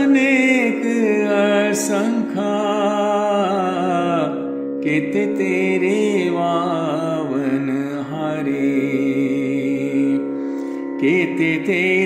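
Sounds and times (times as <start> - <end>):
instrumental drone: 0.0 - 12.0.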